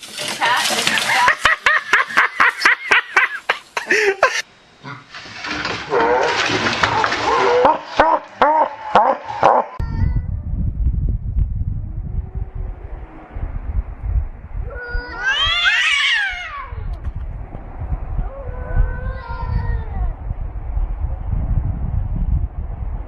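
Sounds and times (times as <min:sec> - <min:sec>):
water splashing: 0:00.0 - 0:02.6, 0:05.2 - 0:09.4
people laughing: 0:00.8 - 0:04.4
wind rumble on microphone: 0:09.8 - 0:23.0
cat caterwauling: 0:14.7 - 0:16.9.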